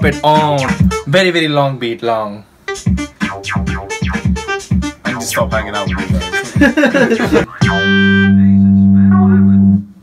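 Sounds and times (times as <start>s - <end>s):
drum-machine thumps: 0.0s - 1.0s, 2.8s - 8.2s.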